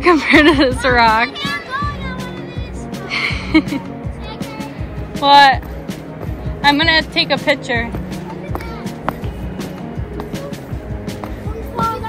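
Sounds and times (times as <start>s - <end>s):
background music with held tones: 0.0s - 12.0s
footsteps on stone steps: 0.0s - 12.0s.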